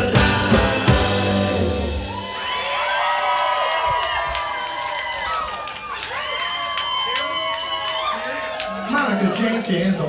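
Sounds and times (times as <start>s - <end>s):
band chord: 0.0s - 2.4s
audience cheering and whooping: 1.5s - 10.0s.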